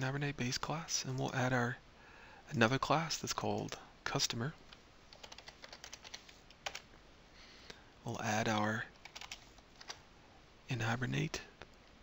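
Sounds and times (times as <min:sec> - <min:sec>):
faint computer keyboard typing: 0:04.6 - 0:06.9, 0:08.5 - 0:10.0.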